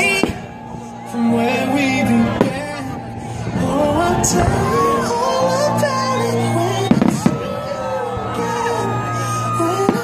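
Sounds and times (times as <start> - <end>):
fireworks bursting: 0.0 - 5.9, 6.8 - 7.7
pop song playing: 0.0 - 10.0.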